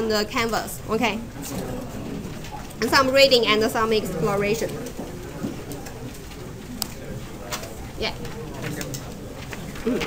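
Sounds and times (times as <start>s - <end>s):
low murmur of voices: 0.0s - 10.0s.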